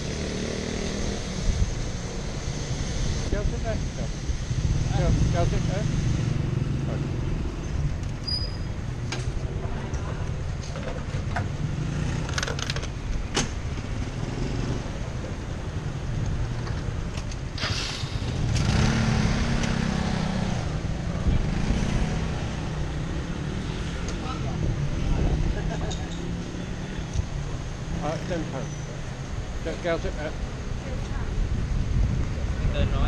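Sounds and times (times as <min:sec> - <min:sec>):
clicks and knocks from scooter: 0:12.2 - 0:13.6
motorbike engines running: 0:13.5 - 0:33.0.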